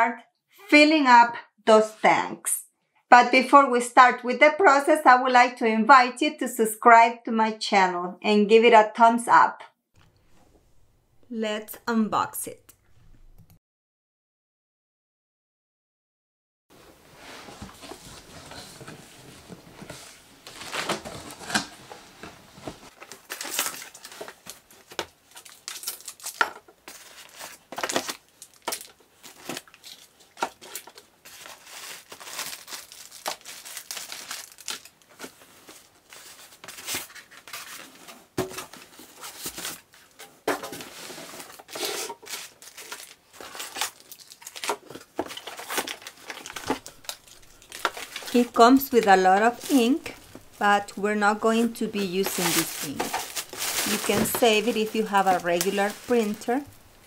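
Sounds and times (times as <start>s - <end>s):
plastic bags crinkling: 22.9s - 37.9s, 38.6s - 57.0s.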